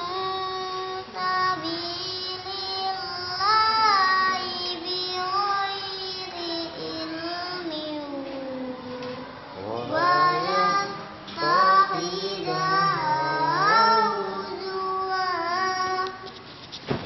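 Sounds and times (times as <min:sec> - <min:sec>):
child reciting melodically: 0:00.0 - 0:16.4.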